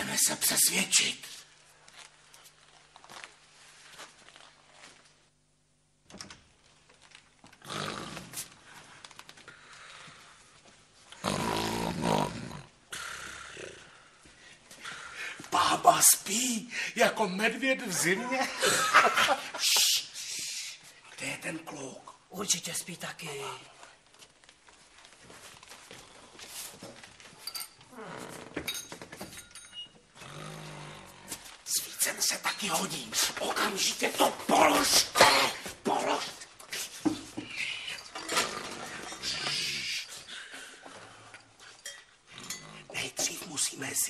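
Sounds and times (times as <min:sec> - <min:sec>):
woman snoring loudly: 0:11.2 - 0:14.0.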